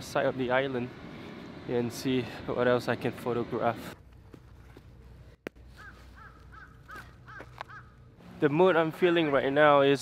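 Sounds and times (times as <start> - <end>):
bird calling: 5.7 - 8.4.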